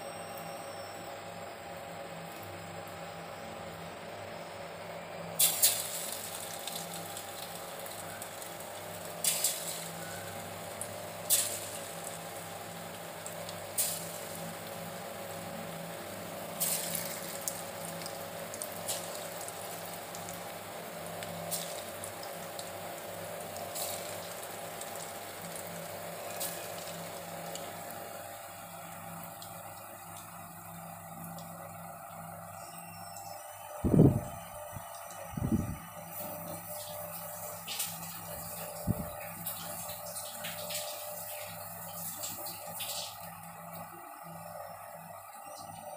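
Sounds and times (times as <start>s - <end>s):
oil crackling and spitting: 5.4s - 15.4s, 16.1s - 28.0s
food sizzling in hot oil: 5.4s - 28.3s.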